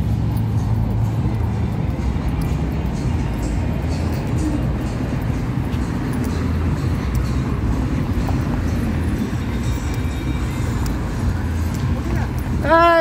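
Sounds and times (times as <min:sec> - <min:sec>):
car traffic: 0:00.0 - 0:13.0
music with heavy pulsing bass: 0:00.0 - 0:13.0.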